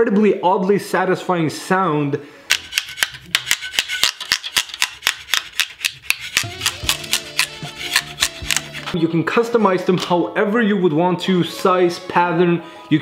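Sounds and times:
background music: 6.2 - 13.0.

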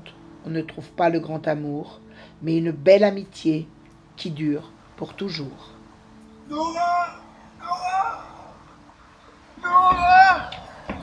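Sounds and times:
high wordless voice holding notes: 6.4 - 8.5.

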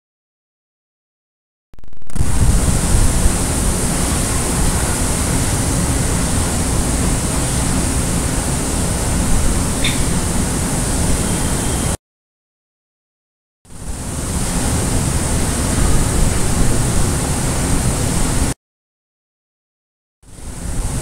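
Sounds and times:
loud steady rushing noise: 2.1 - 12.0, 13.7 - 18.6, 20.3 - 21.0.

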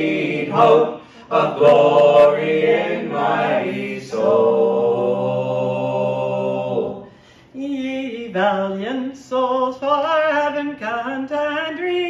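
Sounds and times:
mixed voices singing a hymn: 0.0 - 7.1.

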